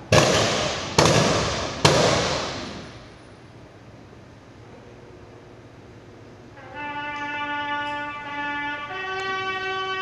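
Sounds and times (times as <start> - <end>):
rifle volleys reverberating: 0.1 - 2.9.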